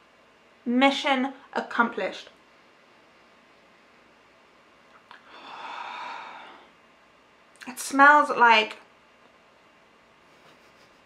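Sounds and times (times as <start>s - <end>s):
woman breathing in: 5.1s - 6.8s.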